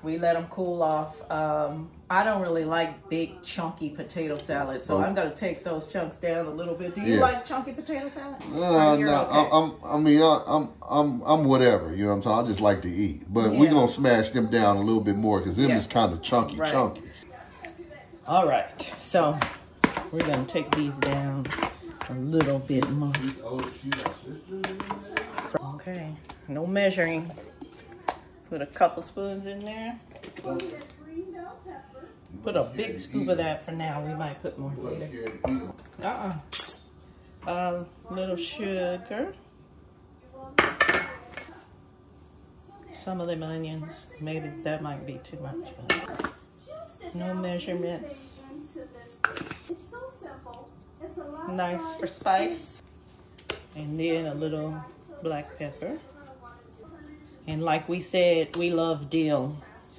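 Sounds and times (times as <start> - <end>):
knife chopping potatoes in bowl: 18.8 - 25.6.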